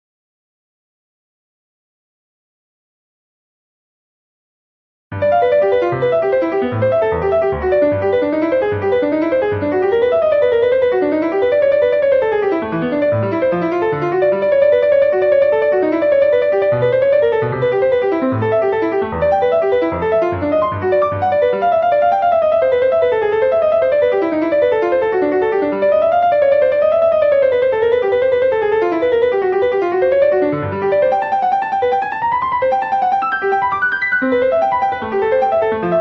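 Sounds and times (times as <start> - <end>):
piano playing fast run: 5.1 - 36.0.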